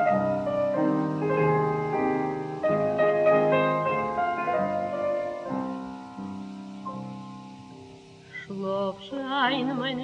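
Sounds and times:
slow piano lullaby: 0.0 - 10.0.

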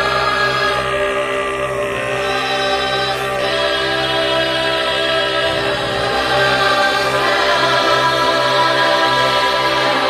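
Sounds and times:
choir holding long notes: 0.0 - 10.0
low drone: 0.0 - 10.0.

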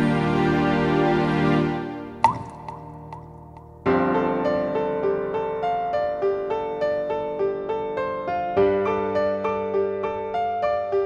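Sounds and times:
piano music: 2.0 - 11.0
liquid drop plopping into bowl: 2.2 - 3.5.

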